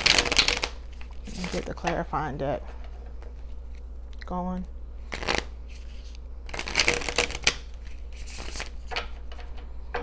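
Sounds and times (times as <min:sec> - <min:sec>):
cards being shuffled: 0:00.0 - 0:01.9, 0:05.1 - 0:09.1.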